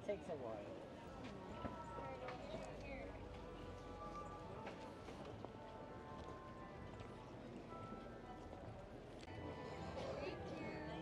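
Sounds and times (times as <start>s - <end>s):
open-air hubbub: 0.0s - 11.0s
quiet background music: 0.0s - 11.0s.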